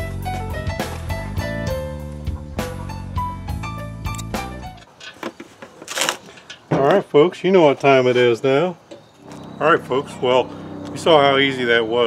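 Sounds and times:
background music with bass and piano: 0.0s - 4.9s.

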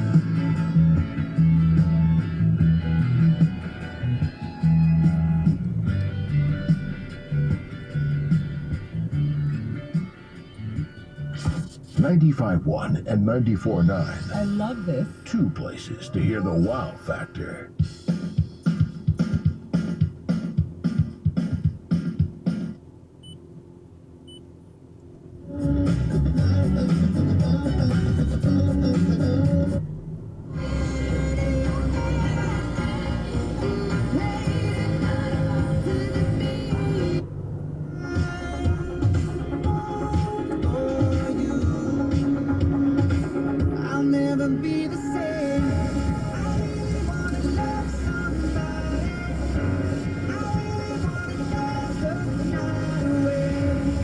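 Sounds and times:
song on car radio: 0.0s - 54.0s.

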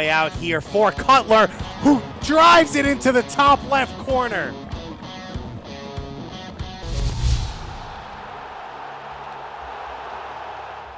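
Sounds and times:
rock music with guitar: 4.0s - 7.1s
heavy low impact hit: 6.8s - 8.4s
noisy tail: 6.8s - 8.4s
whoosh: 6.8s - 8.4s.

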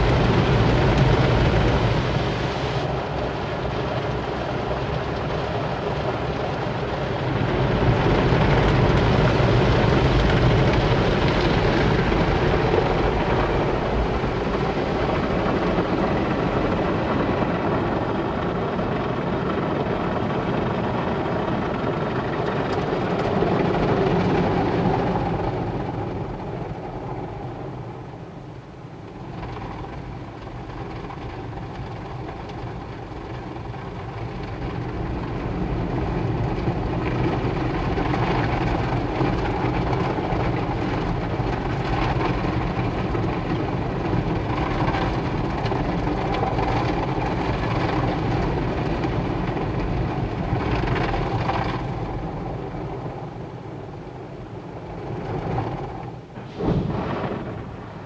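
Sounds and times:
car wash machinery and water: 0.0s - 58.0s.

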